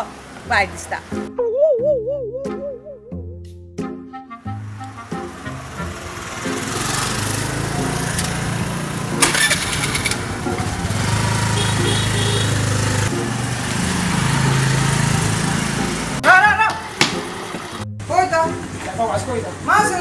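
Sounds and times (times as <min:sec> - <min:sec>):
scooter engine running: 0:04.6 - 0:16.2, 0:16.8 - 0:17.8.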